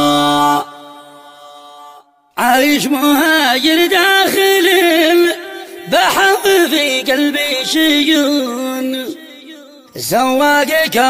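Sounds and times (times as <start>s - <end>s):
echo of voice: 0.0s - 11.0s.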